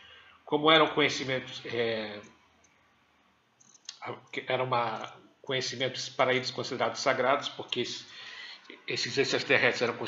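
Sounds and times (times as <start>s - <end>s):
man speaking: 0.5s - 2.4s, 3.9s - 10.0s.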